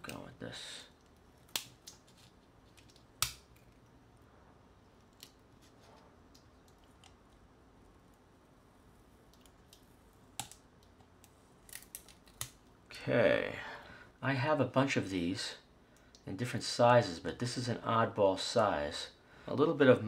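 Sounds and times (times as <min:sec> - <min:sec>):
tape peeling crinkling rustle: 0:00.9 - 0:04.0, 0:04.9 - 0:07.5, 0:09.2 - 0:12.7.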